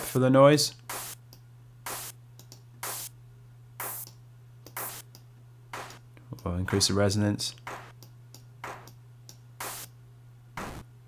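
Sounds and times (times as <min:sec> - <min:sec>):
steady low hum: 0:00.0 - 0:11.0
drum machine clap bursts: 0:00.9 - 0:01.2, 0:01.9 - 0:02.2, 0:02.8 - 0:03.1, 0:03.8 - 0:04.1, 0:04.7 - 0:05.1, 0:05.7 - 0:06.0, 0:07.6 - 0:08.0, 0:08.6 - 0:08.9, 0:09.6 - 0:09.9, 0:10.6 - 0:10.9.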